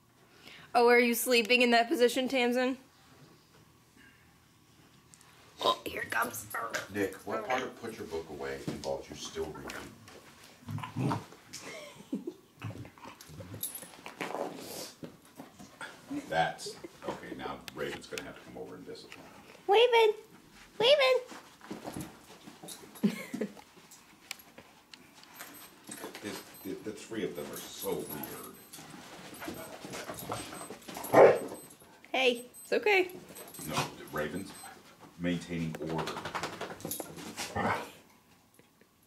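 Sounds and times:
dogs scuffling: 0:20.3 - 0:31.9, 0:33.1 - 0:37.8
dog vocalizations: 0:27.6 - 0:31.8.

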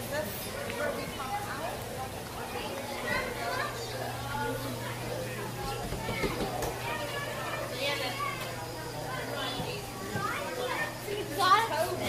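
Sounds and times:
children and people talking: 0:00.0 - 0:12.0.

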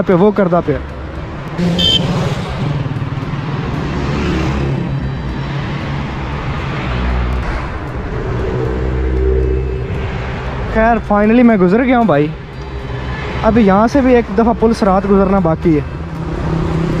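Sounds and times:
car engine hum: 0:00.0 - 0:17.0
road traffic passing: 0:00.0 - 0:17.0.

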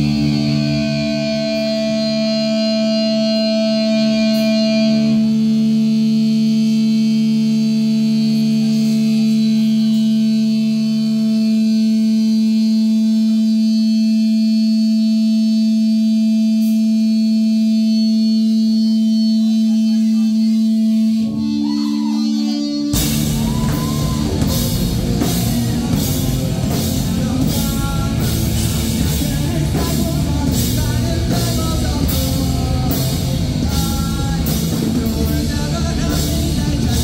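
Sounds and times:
droning electric guitars: 0:00.0 - 0:37.0.

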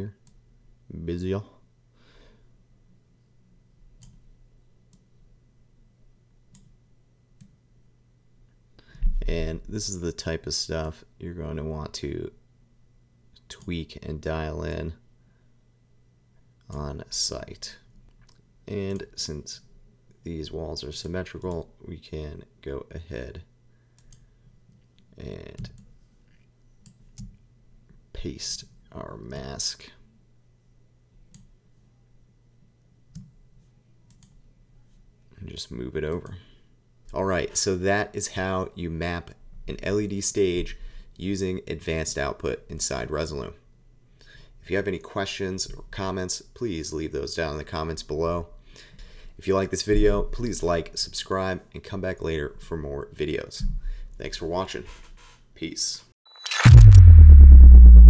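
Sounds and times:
low steady room hum: 0:00.0 - 0:54.8
computer mouse clicks: 0:04.0 - 0:04.2, 0:06.5 - 0:06.7, 0:24.0 - 0:24.2, 0:34.1 - 0:34.4
low steady hum: 0:56.5 - 0:58.0.

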